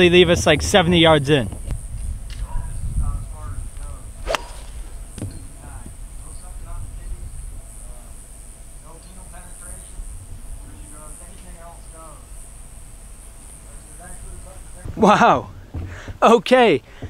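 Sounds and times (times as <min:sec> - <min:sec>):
golf club striking ball: 0:04.2 - 0:05.5.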